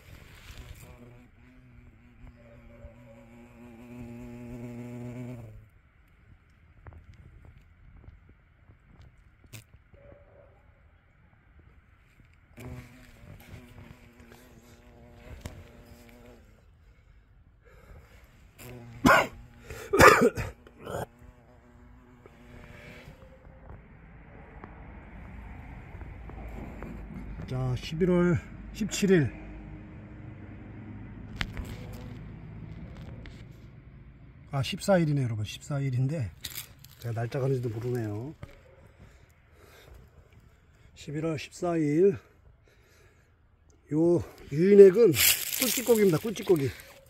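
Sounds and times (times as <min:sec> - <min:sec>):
hornet buzzing in flight: 0:00.0 - 0:05.7, 0:12.5 - 0:17.1, 0:17.7 - 0:23.6, 0:25.2 - 0:27.5.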